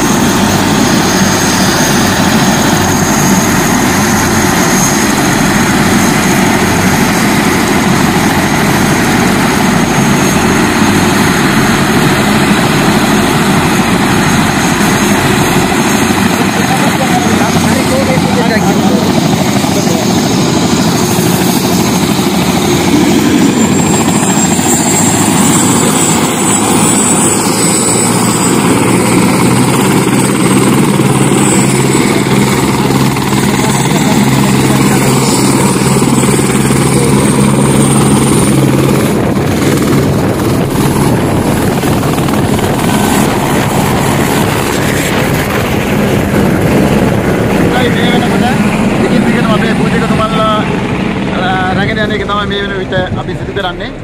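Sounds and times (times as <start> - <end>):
helicopter rotor and engine noise: 0.0 - 54.0.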